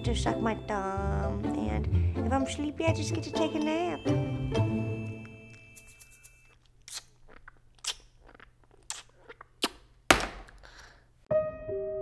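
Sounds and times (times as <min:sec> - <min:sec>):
soft piano music: 0:11.3 - 0:12.0.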